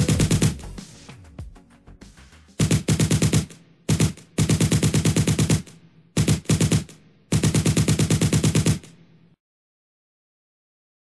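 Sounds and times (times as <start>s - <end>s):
machine-gun fire bursts: 0.0s - 0.7s, 2.6s - 8.9s.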